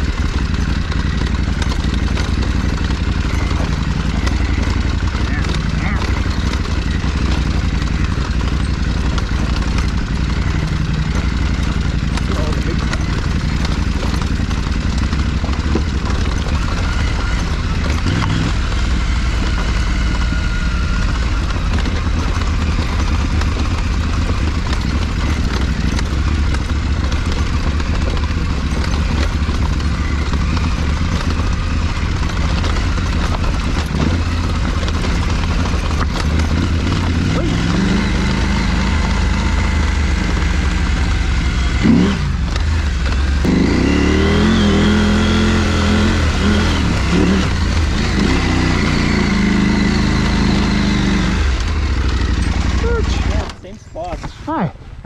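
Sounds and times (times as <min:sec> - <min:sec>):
motorcycle engine running: 0:00.0 - 0:55.0
tyres on dirt track: 0:00.0 - 0:55.0.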